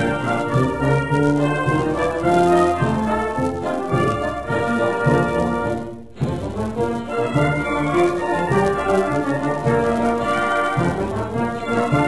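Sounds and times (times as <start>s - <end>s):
military brass band march: 0.0s - 12.0s.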